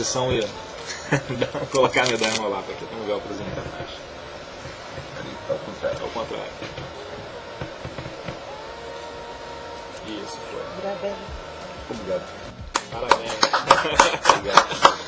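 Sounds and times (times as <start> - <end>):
faint indistinct voices: 0.0 - 15.0
soft music: 0.0 - 15.0.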